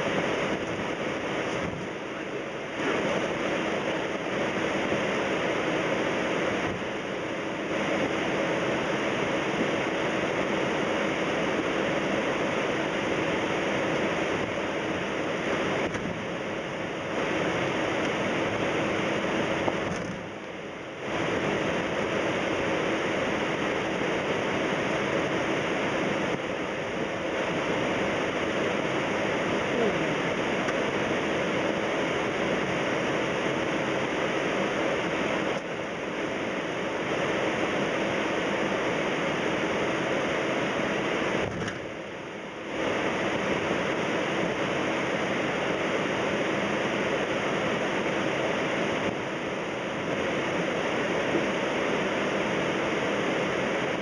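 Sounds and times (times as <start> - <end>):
aircraft cabin engine and airflow noise: 0.0 - 54.0
steady low hum: 0.0 - 54.0.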